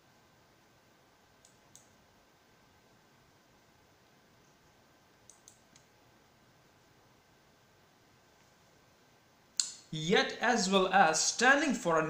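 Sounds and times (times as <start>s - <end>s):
faint quick clicks: 5.3s - 5.9s.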